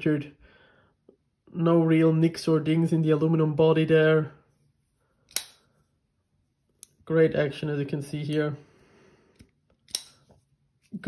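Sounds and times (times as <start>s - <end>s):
folding knife clicks: 5.3s - 5.6s, 9.4s - 10.2s.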